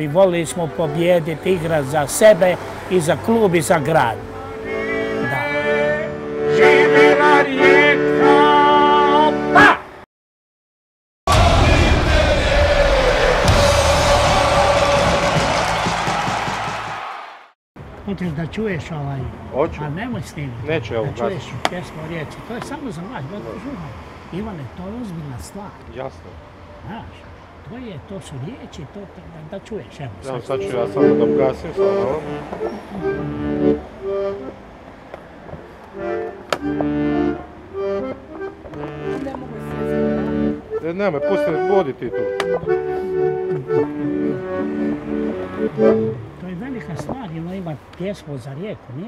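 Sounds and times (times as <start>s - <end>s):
accordion playing held chords: 0.0s - 9.8s, 30.2s - 47.6s
dense music swell: 11.3s - 16.0s.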